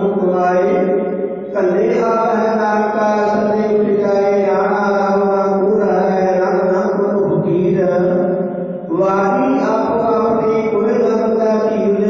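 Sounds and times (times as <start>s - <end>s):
voices chanting a prayer: 0.0s - 8.2s, 8.9s - 12.0s.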